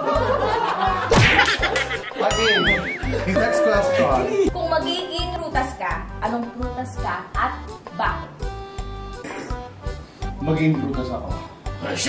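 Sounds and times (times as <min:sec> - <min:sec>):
music beat: 0:00.0 - 0:12.0
ding: 0:02.3 - 0:03.1.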